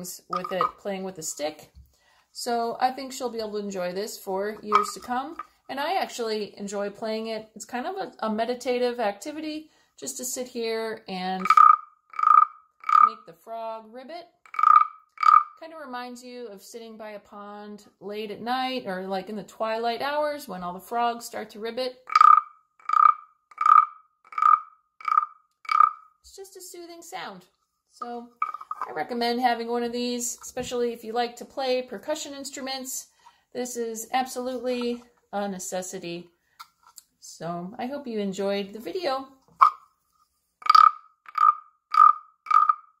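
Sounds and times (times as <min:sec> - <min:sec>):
wooden frog rasp croaking: 0:00.3 - 0:00.9, 0:04.6 - 0:05.6, 0:11.4 - 0:13.3, 0:14.4 - 0:15.6, 0:22.0 - 0:26.2, 0:28.4 - 0:29.1, 0:39.5 - 0:39.9, 0:40.6 - 0:43.0.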